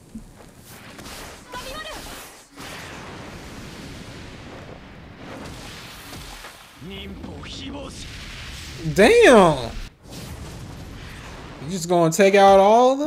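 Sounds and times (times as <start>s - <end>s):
person speaking: 8.8s - 9.7s.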